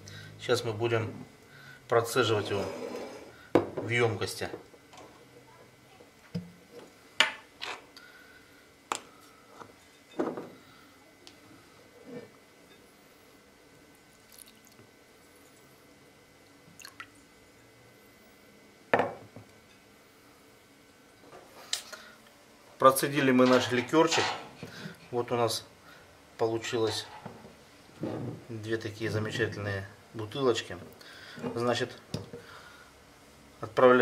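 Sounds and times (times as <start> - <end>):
liquid pouring and dripping: 14.1 - 15.7, 16.7 - 17.2.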